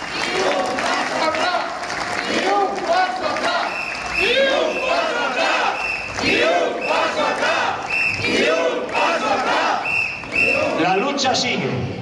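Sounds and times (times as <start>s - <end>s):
crowd chanting: 0.0s - 10.8s.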